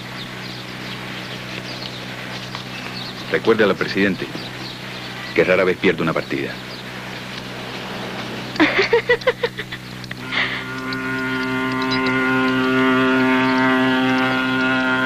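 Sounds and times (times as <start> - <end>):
ship's horn blast: 10.2 - 15.0.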